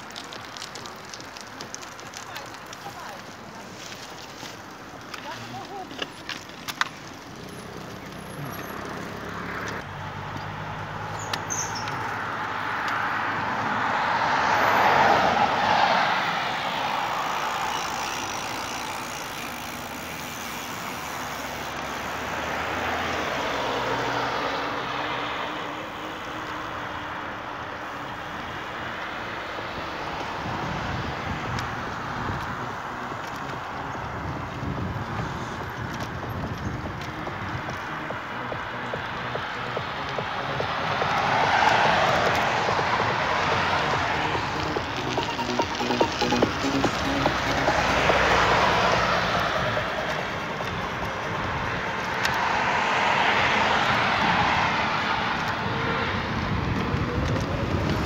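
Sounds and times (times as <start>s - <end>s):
cars passing on road: 0.0s - 58.0s.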